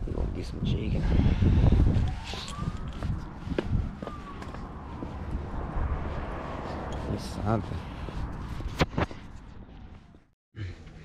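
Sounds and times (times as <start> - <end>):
faint siren wailing: 1.7 - 7.4.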